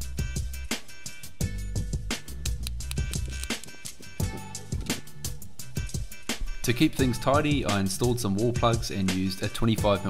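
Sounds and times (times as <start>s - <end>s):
music with drum beat and bass: 0.0s - 10.0s.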